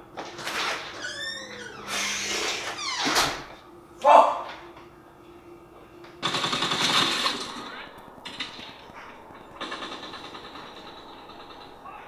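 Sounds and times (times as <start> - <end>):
rapid popping: 6.2 - 12.0.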